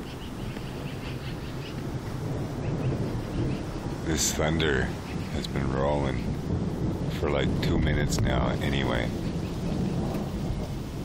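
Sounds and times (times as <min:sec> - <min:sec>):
thunder rumbling: 0:00.0 - 0:11.0.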